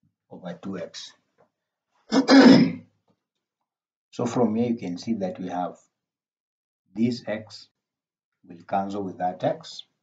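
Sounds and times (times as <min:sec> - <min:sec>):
man clearing his throat: 0:02.1 - 0:02.8.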